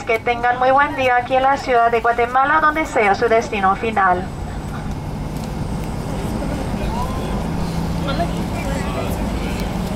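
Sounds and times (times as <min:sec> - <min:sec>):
faint passenger voices: 0:00.0 - 0:09.9
jet engines humming: 0:00.0 - 0:09.9.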